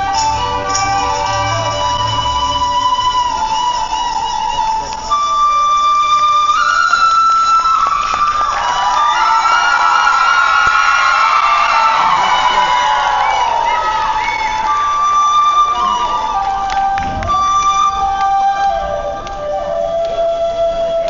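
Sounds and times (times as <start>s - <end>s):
folk dance music: 0.0s - 21.0s
held sliding melody line: 0.0s - 21.0s.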